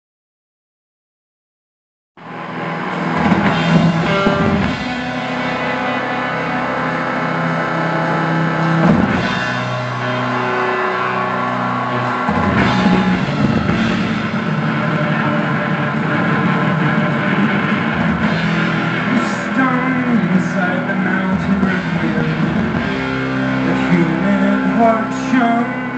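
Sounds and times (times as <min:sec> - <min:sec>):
electric guitar: 0:02.2 - 0:25.9
live rock band playing: 0:02.3 - 0:25.9.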